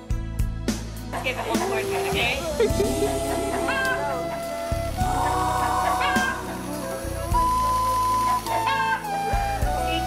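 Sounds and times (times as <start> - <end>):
melody with bass line: 1.2 - 10.0.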